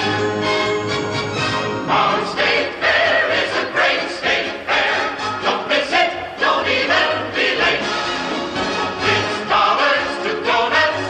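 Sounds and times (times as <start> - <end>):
choir singing: 0.0 - 11.0
orchestra playing show tune: 0.0 - 11.0.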